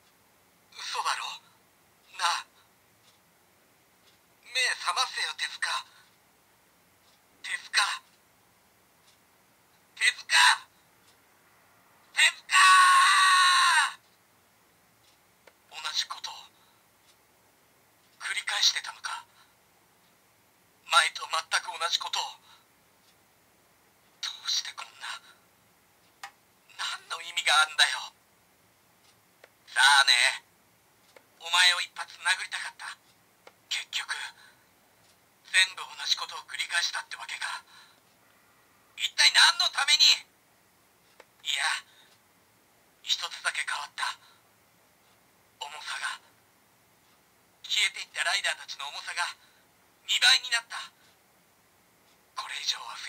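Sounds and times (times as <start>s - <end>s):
tinny recorded voice from toy speaker: 0.7s - 2.6s, 4.4s - 6.1s, 7.4s - 8.1s, 10.0s - 10.7s, 12.1s - 14.0s, 15.7s - 16.6s, 18.2s - 19.4s, 20.8s - 22.6s, 24.2s - 25.4s, 26.7s - 28.2s, 29.7s - 30.5s, 31.4s - 33.0s, 33.7s - 34.5s, 35.5s - 37.8s, 39.0s - 40.3s, 41.4s - 42.0s, 43.0s - 44.3s, 45.6s - 46.3s, 47.6s - 49.4s, 50.0s - 51.0s, 52.4s - 53.0s
toy speaker voice lines: 0.8s - 1.4s, 2.1s - 2.5s, 4.4s - 5.9s, 7.4s - 8.1s, 10.0s - 10.7s, 12.2s - 14.0s, 15.7s - 16.5s, 18.2s - 19.3s, 24.2s - 25.3s, 26.7s - 28.1s, 29.7s - 30.4s, 41.4s - 41.9s, 43.1s - 44.2s, 52.4s - 53.0s
long shout falling in pitch: 12.5s - 14.0s.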